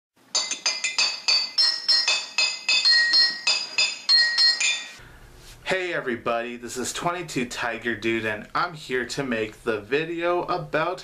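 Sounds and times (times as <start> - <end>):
tinkling bell jingle: 0.3 - 5.0.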